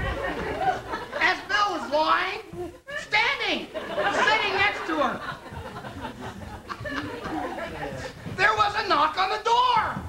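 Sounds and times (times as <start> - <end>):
people talking on stage: 0.0 - 10.0.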